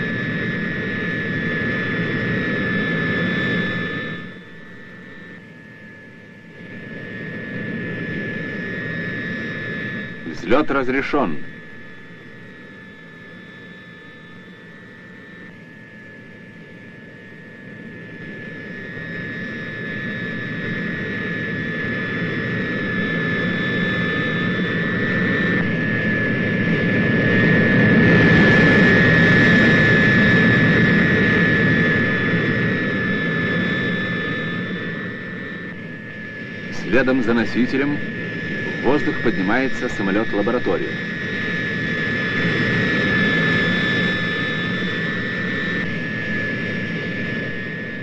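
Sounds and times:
turboprop aircraft passing: 0:18.2 - 0:48.0.

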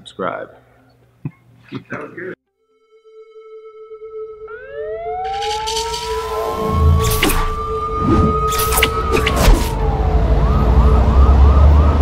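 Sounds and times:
steady high tone: 0:02.7 - 0:10.5
rising siren-like whine: 0:03.0 - 0:12.0.

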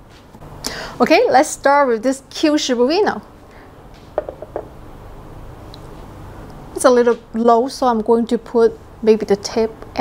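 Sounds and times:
steady low hum: 0:00.0 - 0:10.0
plastic figurine clicks and knocks: 0:04.2 - 0:04.7.

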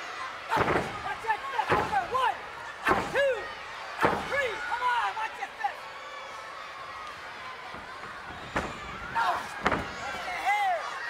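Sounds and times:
heavy thuds on wrestling ring: 0:00.5 - 0:01.0, 0:07.7 - 0:10.3.

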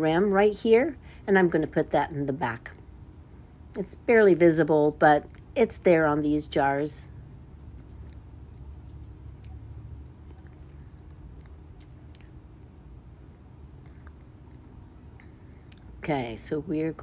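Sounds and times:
low hum: 0:00.0 - 0:17.0.

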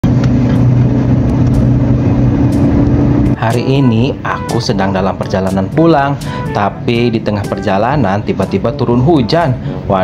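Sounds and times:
car engine running: 0:00.0 - 0:03.6.

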